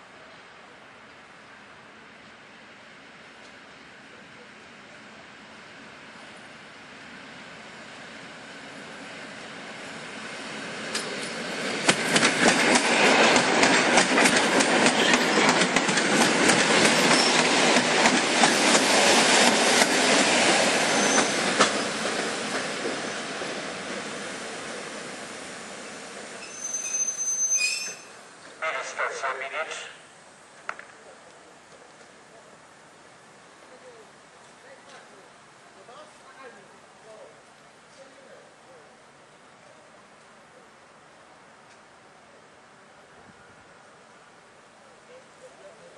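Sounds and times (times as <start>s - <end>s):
train passing: 0.0s - 34.6s, 35.2s - 45.1s.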